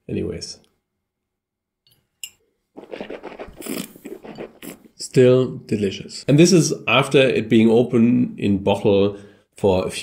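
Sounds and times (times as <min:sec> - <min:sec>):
wet slurping and swishing: 0:02.8 - 0:05.0.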